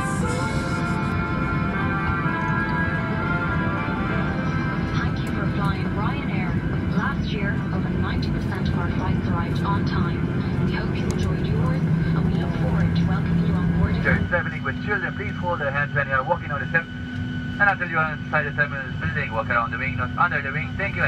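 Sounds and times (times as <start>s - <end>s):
jet engines rumbling: 0.0s - 21.0s
low hum: 0.0s - 21.0s
passengers chattering: 0.0s - 21.0s.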